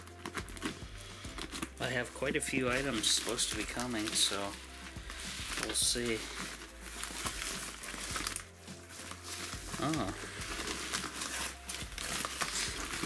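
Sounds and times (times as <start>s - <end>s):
plastic mailer crinkling: 0.0s - 13.0s.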